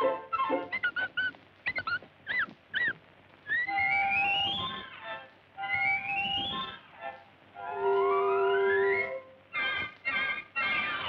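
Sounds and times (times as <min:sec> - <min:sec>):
high cartoon mouse squeaks: 0:00.3 - 0:06.9, 0:09.6 - 0:11.0
rising whistle-like glide: 0:05.7 - 0:06.8
woodwind phrase: 0:07.6 - 0:09.4.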